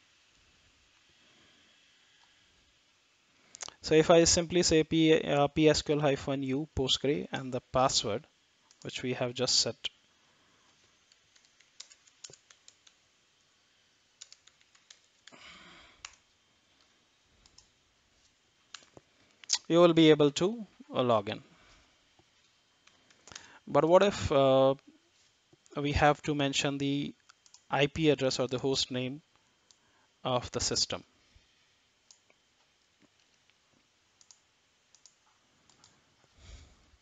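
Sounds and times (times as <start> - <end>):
faint keyboard clicks: 11.0 - 13.0, 14.2 - 15.4, 17.4 - 17.7, 34.2 - 36.0.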